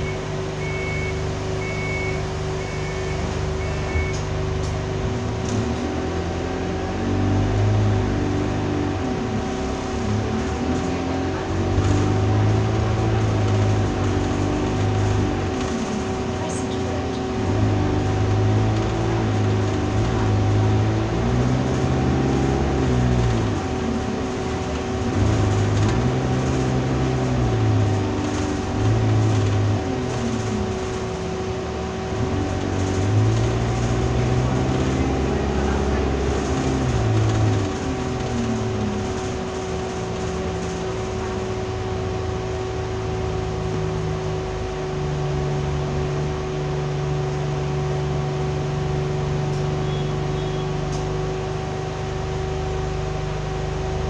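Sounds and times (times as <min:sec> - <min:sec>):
bus diesel engine: 0:00.0 - 0:54.0
constant whine: 0:00.0 - 0:54.0.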